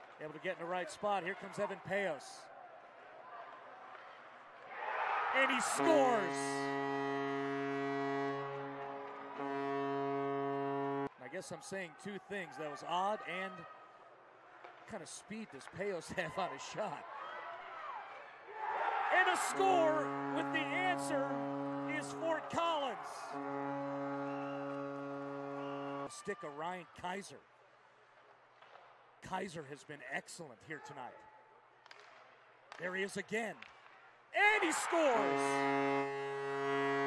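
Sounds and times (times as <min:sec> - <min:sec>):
goal horn blast: 0:05.4 - 0:11.1, 0:19.1 - 0:26.2, 0:34.4 - 0:37.0.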